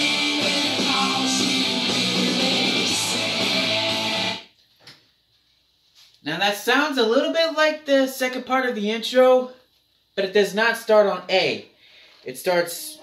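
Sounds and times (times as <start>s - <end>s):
electric guitar riff: 0.0s - 4.4s.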